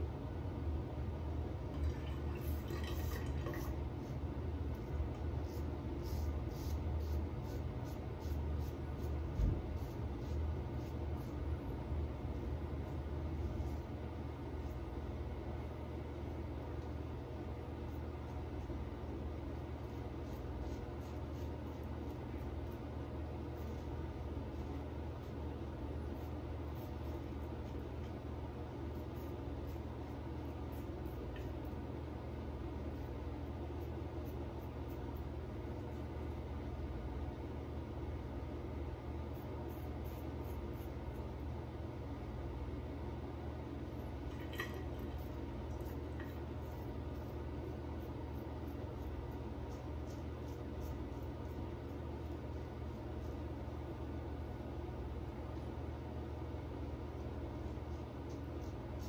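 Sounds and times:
low background hum: 0.0s - 59.0s.

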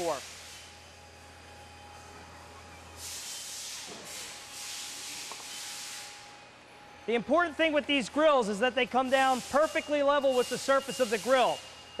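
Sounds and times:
grill platens hissing: 8.2s - 11.6s.

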